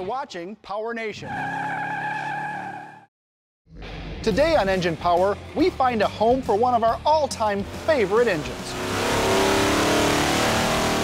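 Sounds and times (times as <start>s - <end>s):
music: 3.7s - 9.2s.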